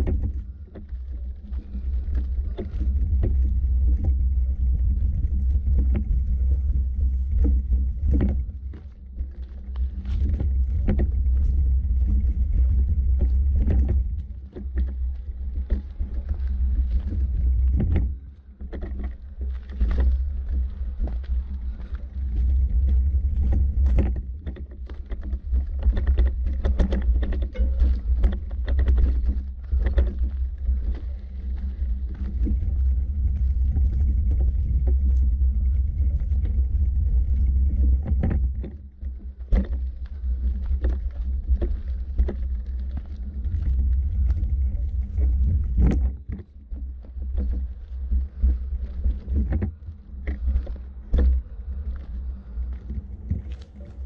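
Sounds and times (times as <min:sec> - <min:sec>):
footsteps on dirt path: 0:00.0 - 0:54.0
wind buffeting microphone: 0:00.0 - 0:54.0.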